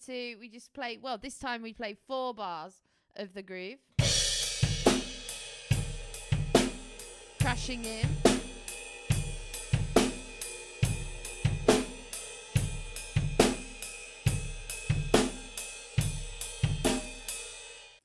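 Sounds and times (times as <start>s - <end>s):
drum kit playing rock groove: 4.0s - 18.0s.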